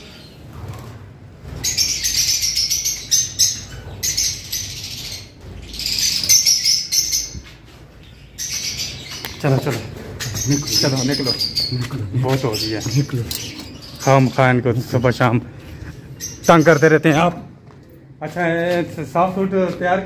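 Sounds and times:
lovebirds chirping shrilly: 0:01.4 - 0:17.5.

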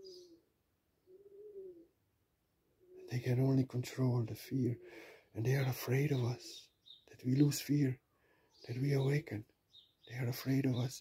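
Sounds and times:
faint bird call: 0:00.0 - 0:02.0.

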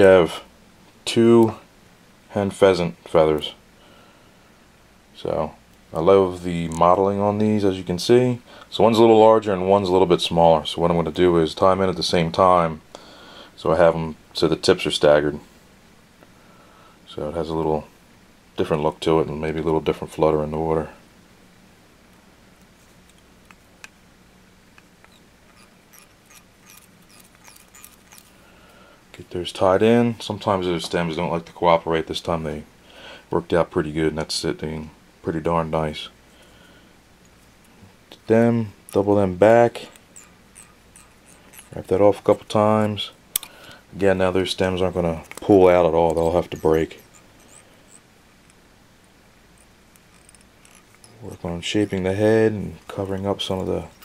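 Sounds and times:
low steady hum: 0:00.0 - 0:54.0
thread ticks and squeaks: 0:25.0 - 0:28.4, 0:38.8 - 0:43.0, 0:44.8 - 0:48.7, 0:49.5 - 0:54.0.

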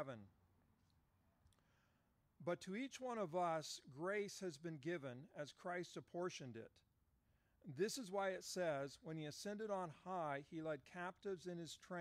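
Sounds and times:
man speaking: 0:00.0 - 0:00.3, 0:02.4 - 0:06.8, 0:07.6 - 0:12.0
faint clicks: 0:00.8 - 0:01.7.

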